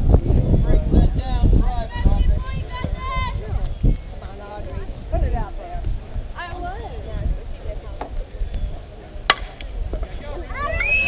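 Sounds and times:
bat striking softball: 9.3s - 10.1s
people shouting and cheering: 10.2s - 11.0s.

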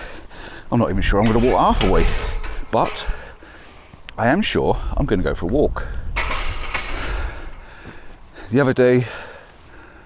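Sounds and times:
wind buffeting microphone: 0.8s - 8.4s.

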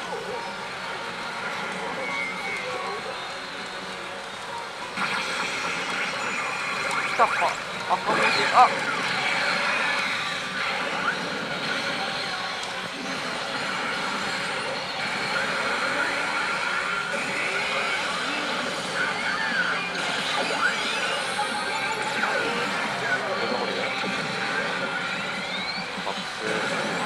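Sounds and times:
din of pachinko parlor: 0.0s - 27.0s
pachinko machine sound effects: 0.0s - 27.0s.

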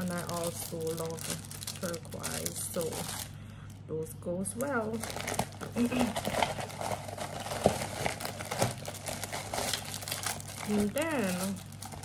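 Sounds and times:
plastic packaging crinkling: 0.0s - 3.9s, 4.5s - 12.0s.

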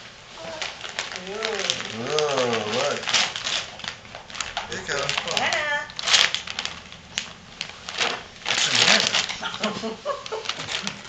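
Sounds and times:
wrapping paper crinkling: 0.3s - 11.0s.

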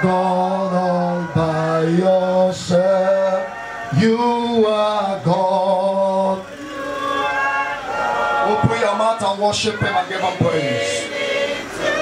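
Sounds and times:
man singing into microphone: 0.0s - 6.5s, 8.4s - 11.1s.

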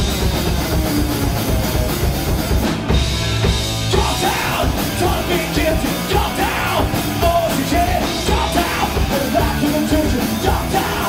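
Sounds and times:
hardcore punk band playing: 0.0s - 11.0s
singer yelling: 3.9s - 11.0s.

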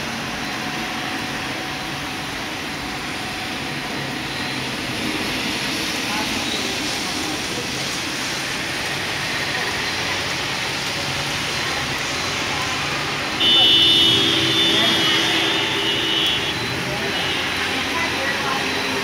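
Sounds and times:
heavy rain: 0.0s - 19.0s
wind: 0.0s - 19.0s
vehicle horn: 13.4s - 17.7s.

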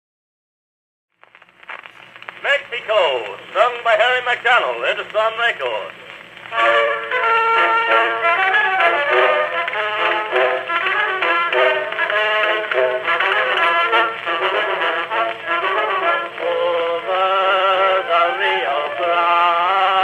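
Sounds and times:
instrumental music from phonograph: 1.2s - 20.0s.

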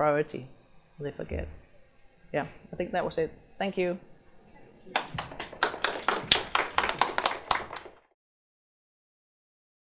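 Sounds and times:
audience applauding: 4.9s - 8.1s.

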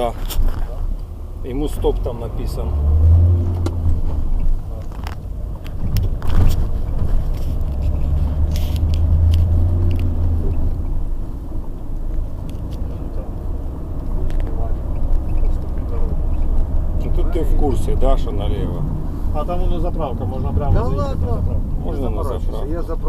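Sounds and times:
car engine drone: 0.0s - 23.0s
road noise in car cabin: 0.0s - 23.0s.

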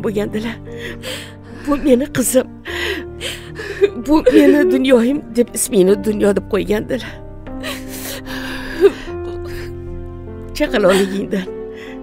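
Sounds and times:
soft background music: 0.0s - 12.0s
woman sobbing: 0.7s - 5.3s, 7.6s - 9.8s, 10.8s - 11.5s.

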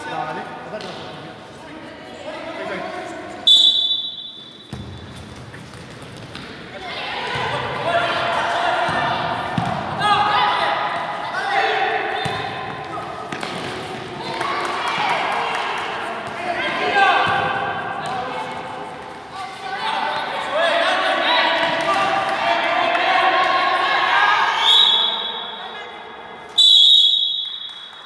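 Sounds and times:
referee's whistle blast: 3.5s - 4.7s, 26.6s - 28.0s
ball kicked and bouncing: 4.7s - 6.6s.

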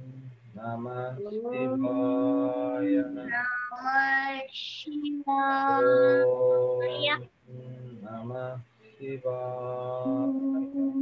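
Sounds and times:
women and children chanting: 1.8s - 4.3s, 5.6s - 7.2s.

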